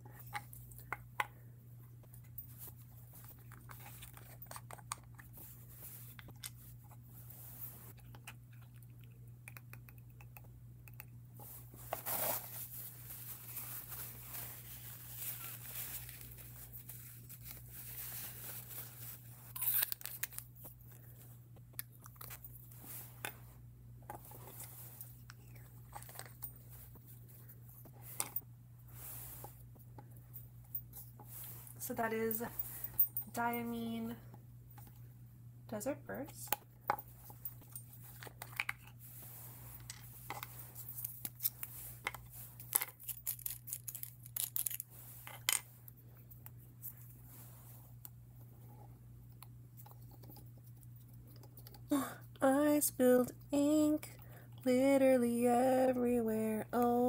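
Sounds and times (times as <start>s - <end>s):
low steady hum: 0.0s - 57.0s
tissue crinkling: 11.4s - 21.2s, 38.0s - 45.2s.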